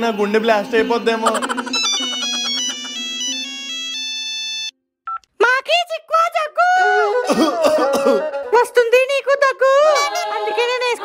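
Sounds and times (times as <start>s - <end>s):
phone ringtone: 1.2s - 5.2s.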